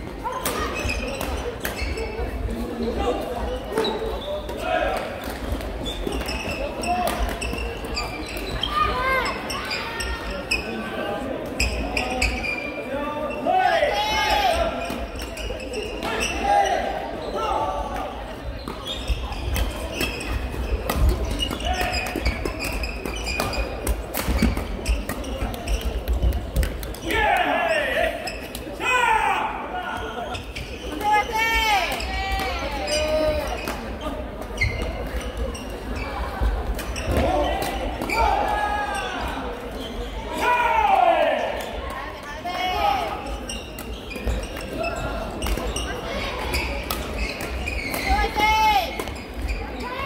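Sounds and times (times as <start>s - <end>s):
shoe squeaks on wooden floor: 0.2s - 2.4s, 5.8s - 10.8s, 11.6s - 13.5s, 14.8s - 17.5s, 18.5s - 26.2s, 30.0s - 38.4s, 43.2s - 50.0s.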